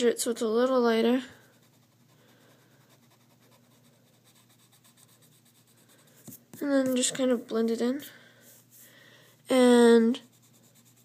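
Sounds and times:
pencil eraser rubbing on paper: 1.4s - 6.7s, 10.1s - 11.0s.

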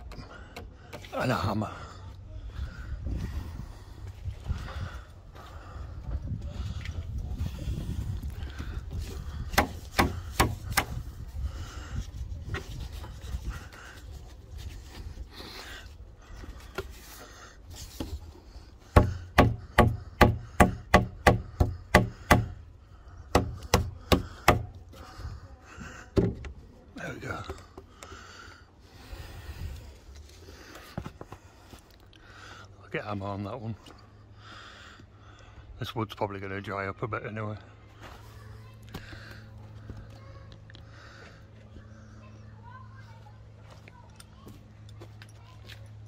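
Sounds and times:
hammer knocking timber: 9.5s - 11.0s, 18.9s - 22.6s, 23.3s - 24.8s
wood rubbing and handling: 11.8s - 22.7s.

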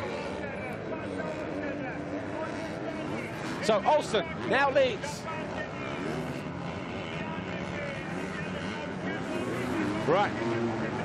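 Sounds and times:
motocross bike engines revving: 0.0s - 11.0s.

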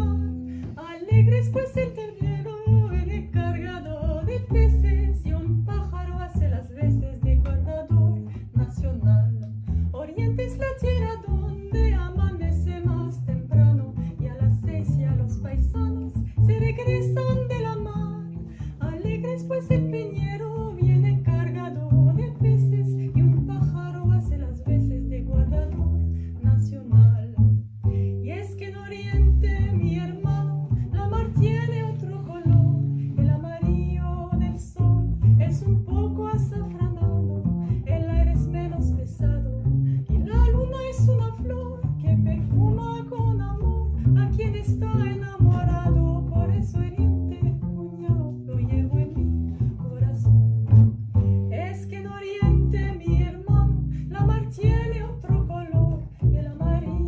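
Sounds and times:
double basses plucked: 0.0s - 57.0s
woman singing: 0.0s - 57.0s.

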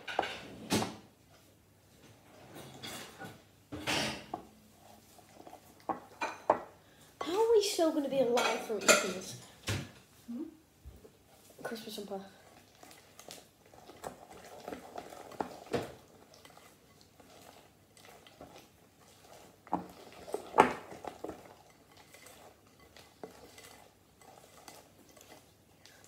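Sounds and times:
spoon stirring batter in glass bowl: 2.5s - 6.7s, 11.2s - 26.0s.

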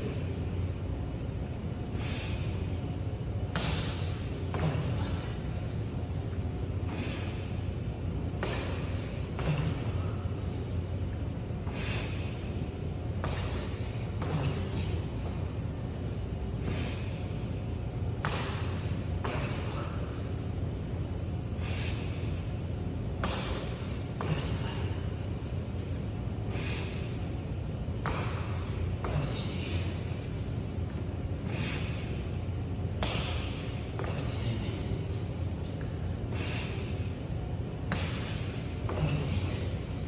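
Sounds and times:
steady low hum: 0.0s - 40.0s
short hard breaths: 1.9s - 2.6s, 6.8s - 7.5s, 11.6s - 12.4s, 21.5s - 22.3s, 31.4s - 32.2s, 36.2s - 37.0s.

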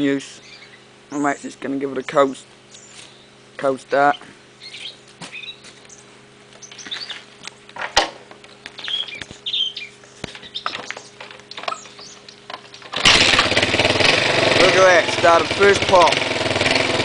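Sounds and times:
small birds chirping: 0.0s - 7.8s, 8.4s - 12.9s
motorcycle engine starting: 6.6s - 17.0s
sharp clicks and knocks: 10.2s - 13.0s.

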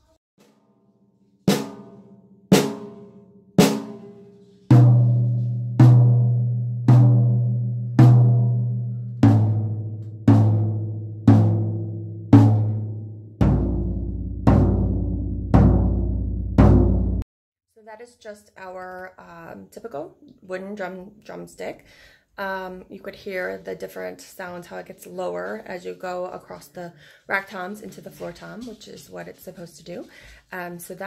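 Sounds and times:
tom drum hits ringing: 1.5s - 17.2s
snare drum hits: 2.6s - 3.0s, 3.6s - 4.1s, 12.4s - 17.2s.

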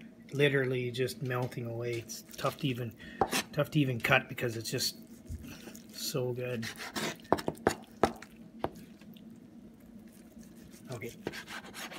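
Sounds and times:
knife slicing meat: 10.1s - 11.9s.

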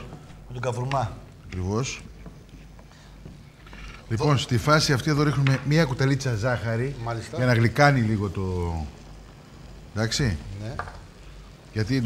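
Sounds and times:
pasta pot boiling: 0.0s - 12.0s
sizzling in a frying pan: 3.5s - 12.0s.

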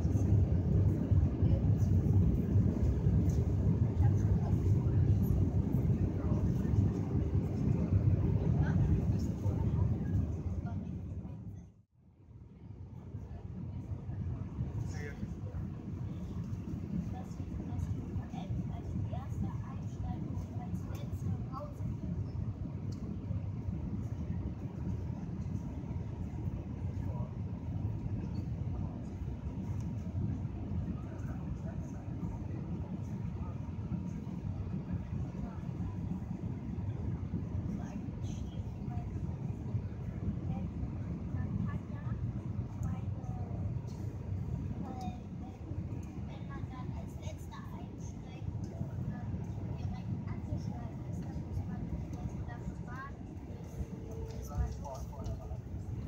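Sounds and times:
airliner cabin engine rumble: 0.0s - 11.9s, 12.5s - 56.0s.

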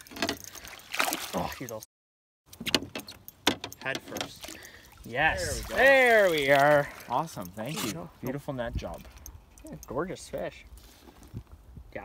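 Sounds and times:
water splashing and sloshing: 0.0s - 1.9s, 2.5s - 9.6s
person exclaiming: 5.1s - 6.2s.

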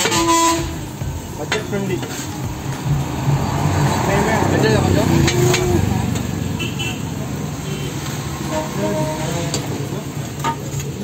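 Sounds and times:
vehicle engine passing: 0.0s - 11.0s.

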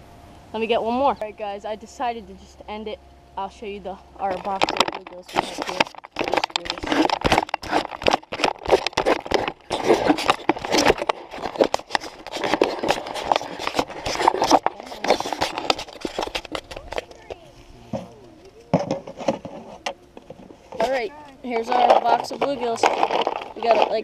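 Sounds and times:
people talking: 0.6s - 7.1s, 14.7s - 15.4s, 16.6s - 20.2s, 20.8s - 24.0s
clicks and rustling: 4.2s - 24.0s.

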